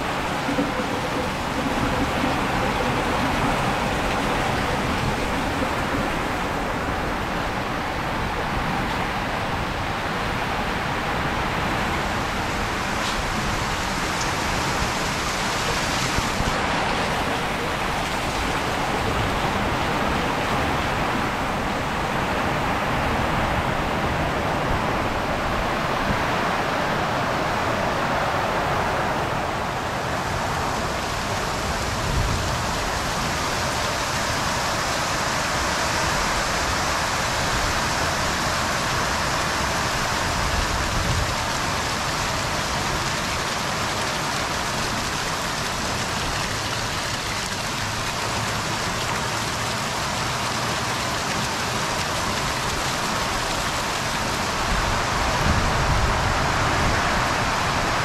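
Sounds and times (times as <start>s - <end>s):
low uneven rumble: 0.0s - 9.6s
heavy rain on ground: 0.0s - 58.0s.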